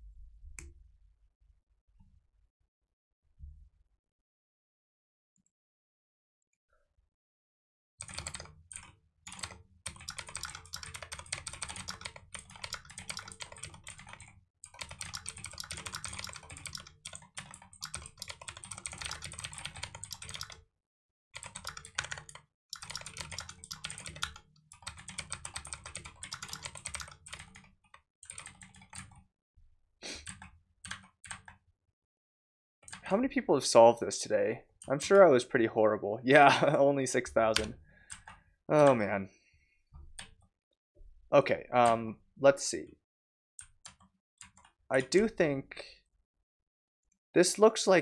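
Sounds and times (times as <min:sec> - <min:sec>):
typing on computer keyboard: 0:08.0 - 0:20.6, 0:21.4 - 0:29.2, 0:30.2 - 0:31.6, 0:37.6 - 0:39.0, 0:43.6 - 0:45.1.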